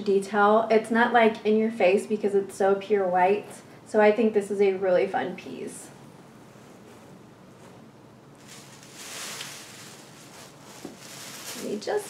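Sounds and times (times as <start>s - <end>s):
clothing fabric rustling: 6.3s - 12.0s.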